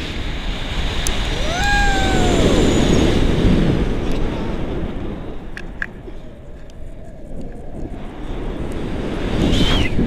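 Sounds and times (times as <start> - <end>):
wind rushing over microphone: 0.0 - 10.0
person calling out: 1.4 - 2.6.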